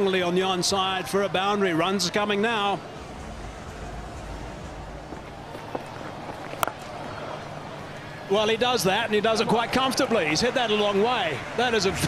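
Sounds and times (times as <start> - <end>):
crowd murmur: 1.7 - 9.8.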